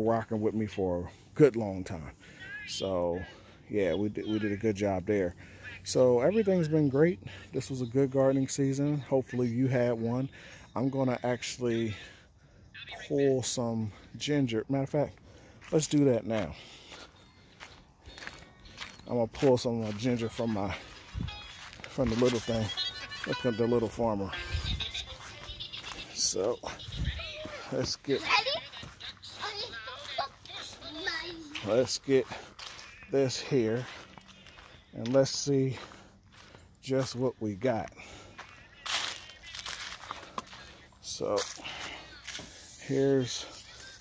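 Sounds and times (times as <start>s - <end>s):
footsteps on mulch and grass: 0.0s - 12.2s, 13.4s - 44.0s.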